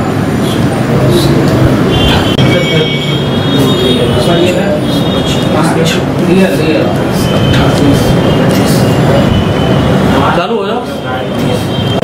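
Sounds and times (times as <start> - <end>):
indistinct voices: 0.0 - 12.0
loud background noise: 0.0 - 12.0.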